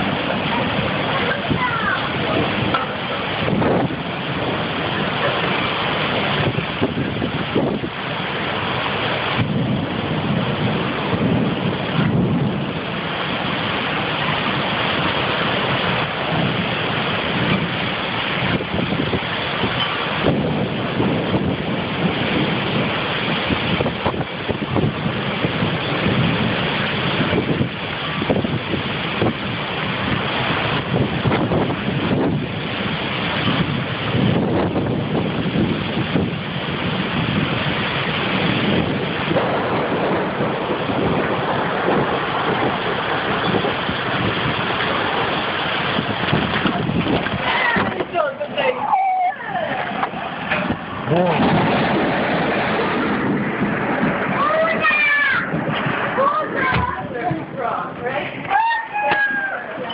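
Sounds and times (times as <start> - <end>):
heavy rain: 0.0 - 59.9
wind buffeting microphone: 0.0 - 59.9.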